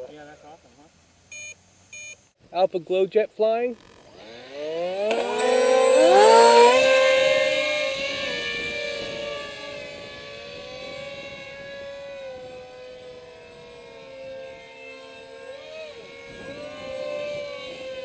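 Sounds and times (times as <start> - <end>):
model jet ducted-fan whine: 2.8 - 18.0.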